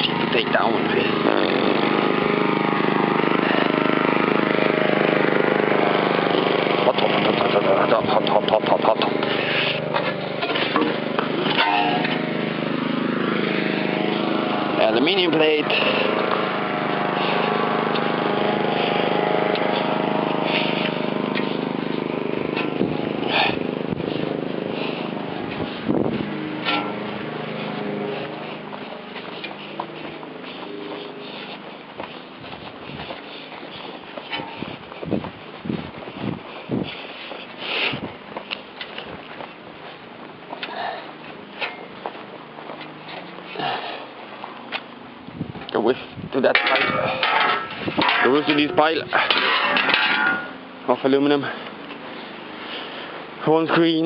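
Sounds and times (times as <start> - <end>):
small engine running: 0.0 - 54.0.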